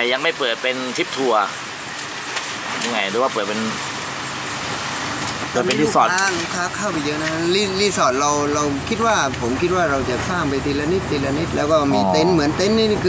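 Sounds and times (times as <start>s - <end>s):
men talking: 0.0s - 1.6s, 2.8s - 3.8s, 5.5s - 13.0s
steady background hiss: 0.0s - 13.0s.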